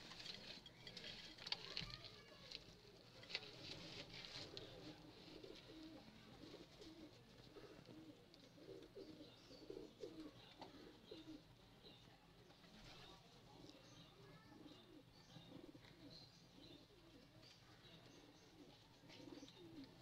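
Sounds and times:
pigeon cooing: 0:02.8 - 0:11.6, 0:14.4 - 0:20.0.

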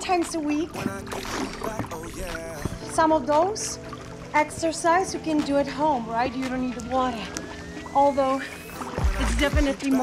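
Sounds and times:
pool water sloshing and lapping: 0:00.0 - 0:10.0
soft background music: 0:00.0 - 0:10.0.

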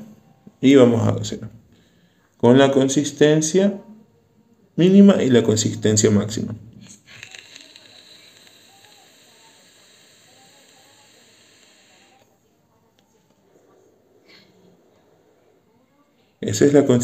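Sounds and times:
hiss of vape draw: 0:06.8 - 0:12.2.

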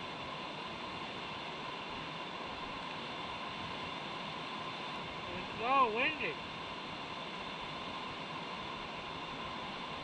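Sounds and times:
flowing river: 0:00.0 - 0:10.0.

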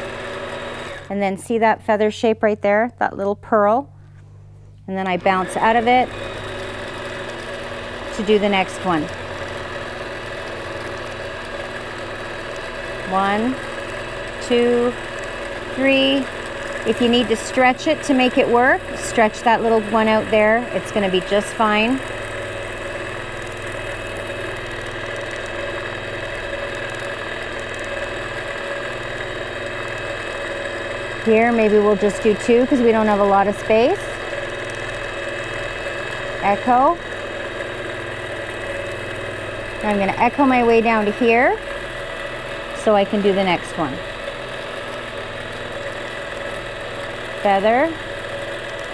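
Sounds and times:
quilting machine running: 0:00.0 - 0:02.2, 0:04.9 - 0:48.9.

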